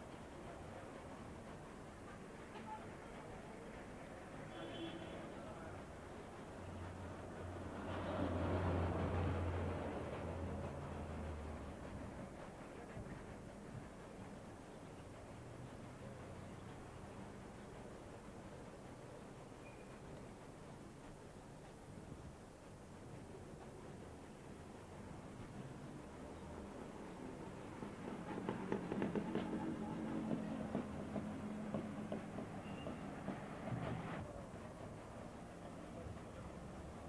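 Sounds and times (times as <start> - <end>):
street background noise: 0.0 - 37.0.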